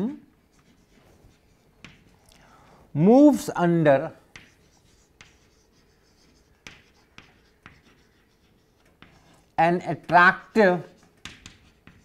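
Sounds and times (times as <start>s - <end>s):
chalk tapping and scratching: 0.5s - 2.3s, 4.3s - 12.0s.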